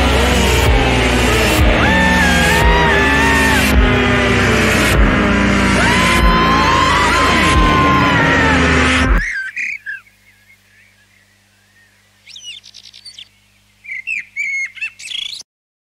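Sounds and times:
loud music: 0:00.0 - 0:09.2
bird-like chirps and whistles: 0:09.2 - 0:15.4.

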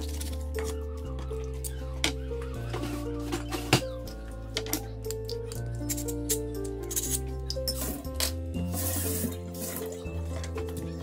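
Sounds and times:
background music sustained notes: 0:00.0 - 0:11.0
knife scraping through sharpener: 0:05.8 - 0:08.0.

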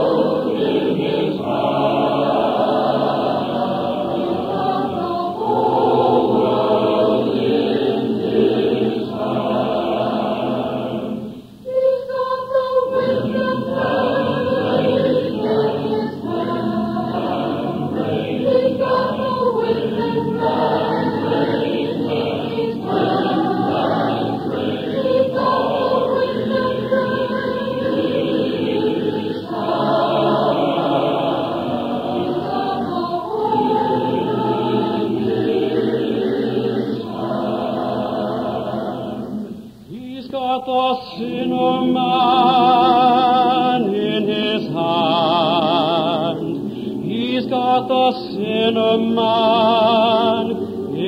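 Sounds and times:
choir singing a sacred song: 0:00.0 - 0:51.0.

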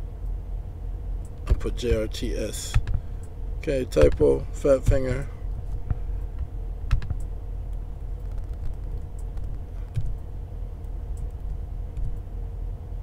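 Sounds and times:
low background rumble and hum: 0:00.0 - 0:13.0
keyboard key clicks: 0:06.9 - 0:07.3.

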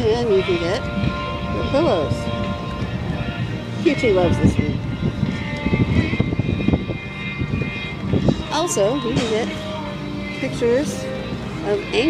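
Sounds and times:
wind buffeting the microphone: 0:00.0 - 0:09.9.

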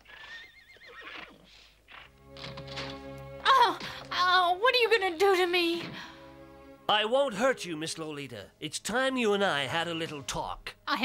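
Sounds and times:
horse whinnying: 0:00.0 - 0:02.2.

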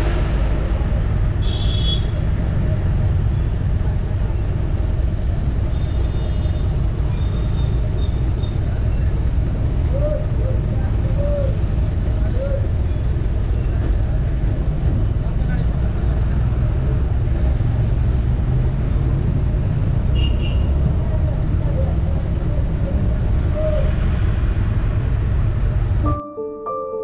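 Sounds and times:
bus engine and road rumble: 0:00.0 - 0:26.1.

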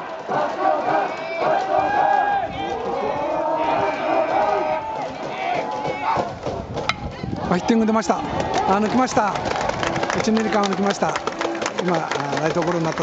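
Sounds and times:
crowd shouting cheers: 0:00.0 - 0:06.4, 0:07.1 - 0:13.0.

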